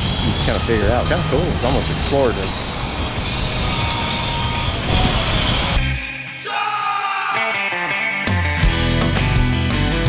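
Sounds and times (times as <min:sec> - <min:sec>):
wind buffeting microphone: 0:00.0 - 0:05.8
rock music: 0:00.6 - 0:10.0.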